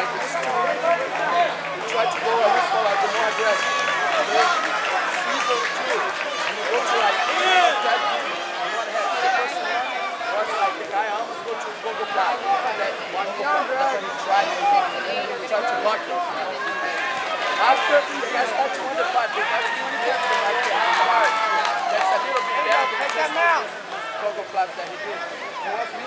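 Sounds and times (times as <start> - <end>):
crowd talking and calling out: 0.0 - 26.0.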